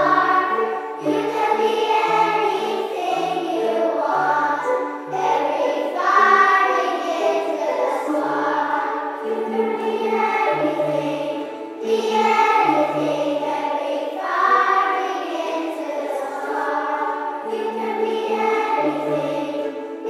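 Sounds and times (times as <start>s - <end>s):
children's choir singing: 0.0s - 20.0s
strummed ukuleles: 0.0s - 20.0s
wooden xylophones: 0.0s - 20.0s.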